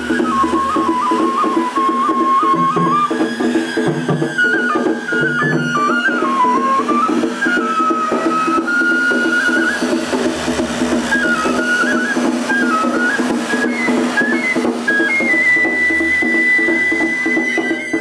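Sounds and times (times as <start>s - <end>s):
bamboo flute melody: 0.0s - 18.0s
rhythmic accompaniment: 0.0s - 18.0s.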